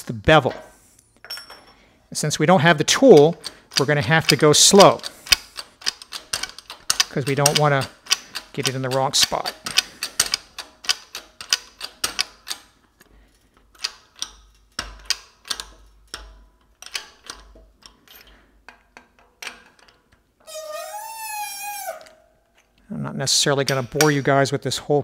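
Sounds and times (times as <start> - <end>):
metallic clicks and ticks: 2.6 - 20.3, 23.5 - 24.4
short squeal: 20.4 - 22.3.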